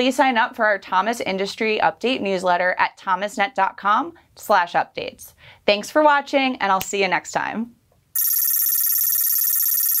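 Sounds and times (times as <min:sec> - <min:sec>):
warbling electronic tone: 0:08.2 - 0:10.0.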